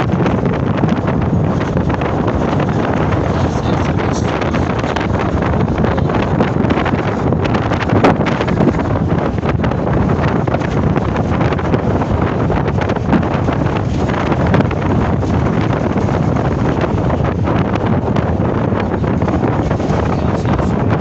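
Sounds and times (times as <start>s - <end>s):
low road rumble: 0.0s - 21.0s
wind buffeting microphone: 0.0s - 21.0s.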